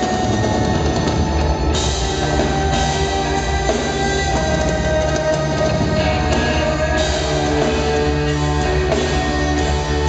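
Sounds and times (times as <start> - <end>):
amplified cellos playing rock: 0.0 - 10.0
drum kit pounding beat: 0.0 - 10.0.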